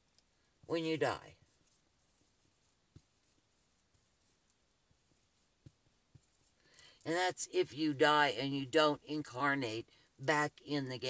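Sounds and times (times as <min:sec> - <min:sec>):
marker writing on whiteboard: 0:00.8 - 0:06.6.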